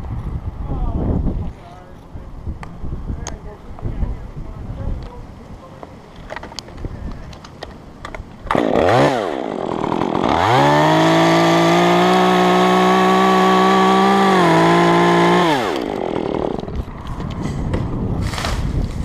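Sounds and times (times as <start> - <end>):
chainsaw cutting through limb: 8.4 - 19.0.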